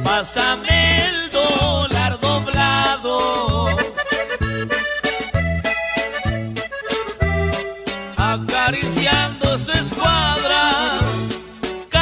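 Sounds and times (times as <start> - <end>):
instrumental band music: 0.0 - 12.0.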